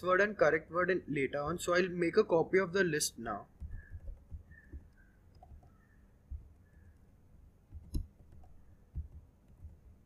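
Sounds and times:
laptop keyboard keystrokes: 3.6s - 6.5s, 7.7s - 10.0s.

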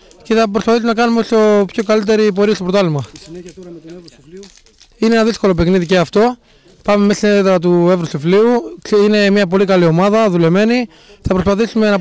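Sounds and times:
man talking: 0.1s - 12.0s.

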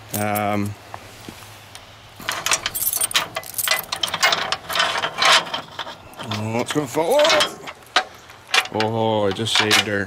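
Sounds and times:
chain rattling: 2.2s - 10.0s
key turning in padlock: 2.3s - 6.4s.

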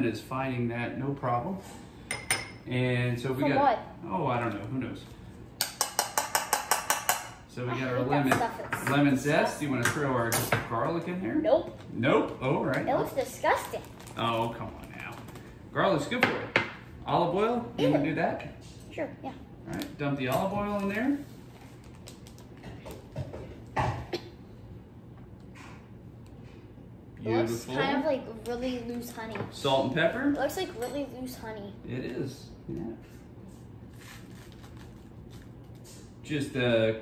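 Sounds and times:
plastic bag rustling: 13.5s - 15.6s.

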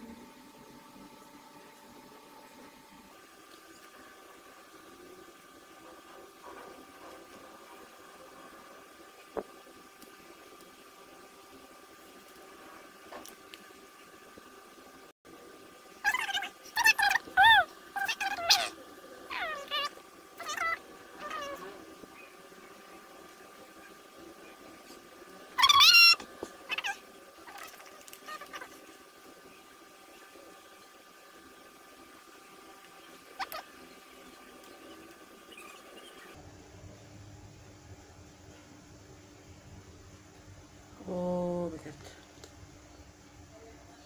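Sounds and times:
cat meowing: 19.3s - 21.7s.

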